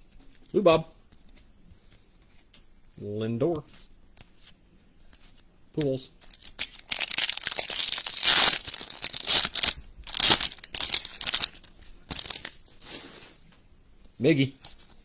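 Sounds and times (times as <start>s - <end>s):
wrapper crinkling: 6.2s - 12.7s
foil wrapper tearing: 6.3s - 12.6s.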